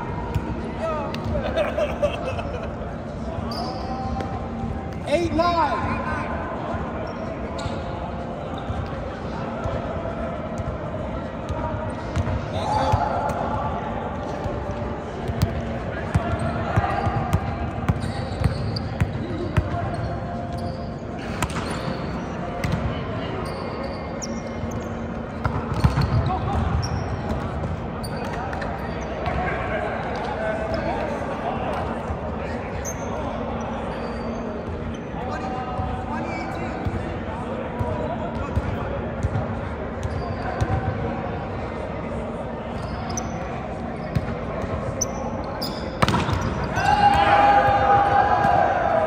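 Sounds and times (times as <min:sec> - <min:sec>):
players talking and calling: 0:00.0 - 0:49.0
volleyballs smacked and bouncing: 0:46.0 - 0:46.6.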